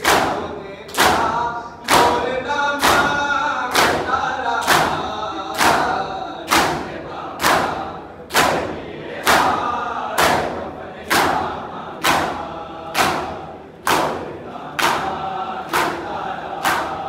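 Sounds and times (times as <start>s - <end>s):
men chanting: 0.0s - 17.0s.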